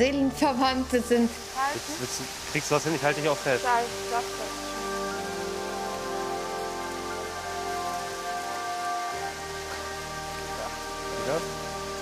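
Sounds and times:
music of long held notes: 0.0s - 12.0s
waterfall falling onto rock: 1.2s - 12.0s.

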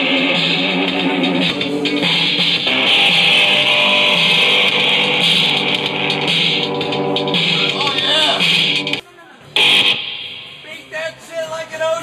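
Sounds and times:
distorted electric guitar: 0.0s - 9.0s, 9.6s - 10.7s
shrill amp feedback: 0.0s - 9.0s, 9.6s - 10.7s.

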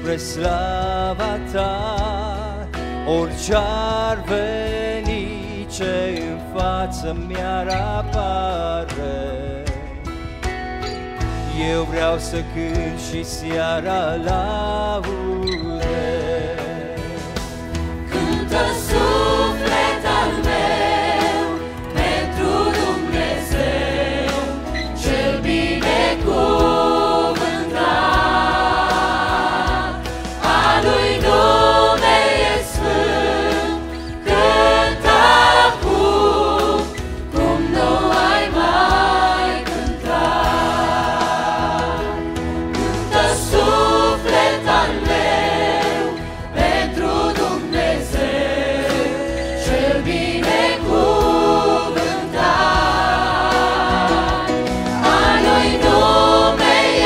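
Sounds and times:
instrumental backing: 0.0s - 57.0s
mixed choir singing: 15.4s - 57.0s.

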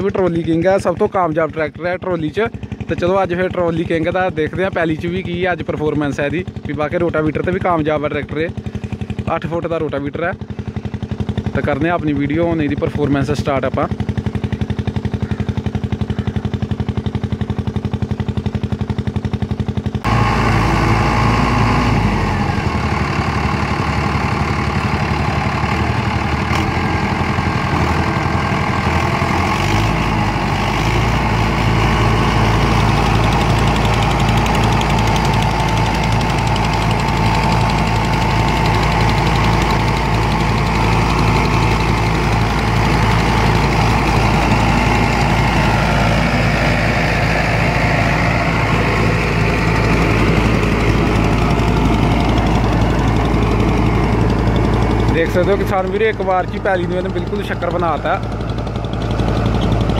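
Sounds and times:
tractor diesel engine under load: 0.0s - 59.9s
rotavator blades churning soil: 26.6s - 59.9s.

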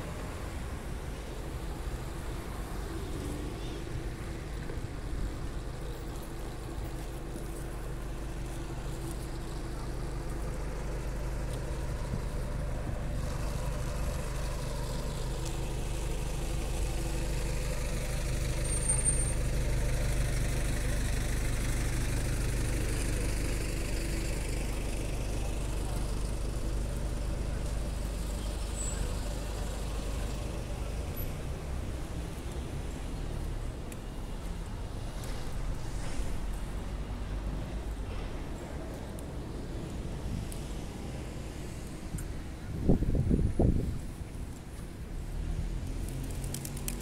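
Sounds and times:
large vehicle engine humming: 0.0s - 47.0s.

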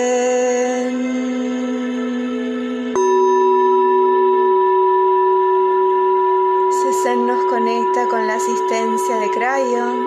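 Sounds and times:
singing bowl ringing: 0.0s - 10.0s.

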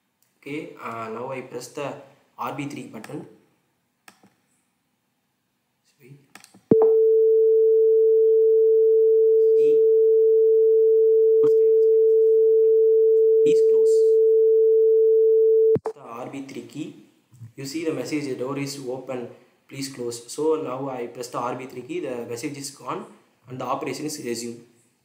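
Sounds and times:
buzzer steady pure tone: 6.7s - 15.8s.

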